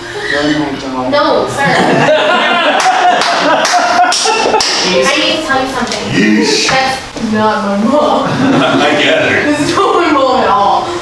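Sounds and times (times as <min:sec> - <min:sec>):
audience laughing: 0:01.6 - 0:05.1, 0:08.2 - 0:10.1.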